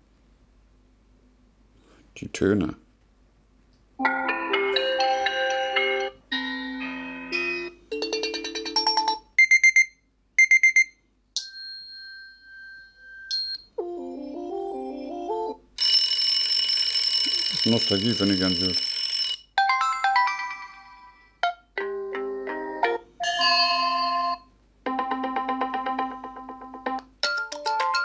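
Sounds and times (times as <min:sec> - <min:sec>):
bright ringing tone: 0:11.4 - 0:13.7, 0:15.8 - 0:19.4, 0:23.2 - 0:24.5
rapid high beeping: 0:17.2 - 0:18.9.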